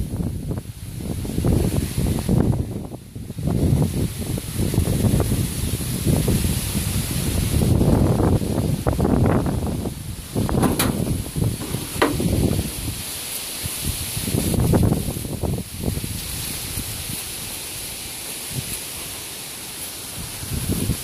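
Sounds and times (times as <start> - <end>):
wind buffeting microphone: 0.0 - 17.3, 20.2 - 21.0
faint steady hiss: 5.7 - 21.0
rustling: 10.2 - 13.4.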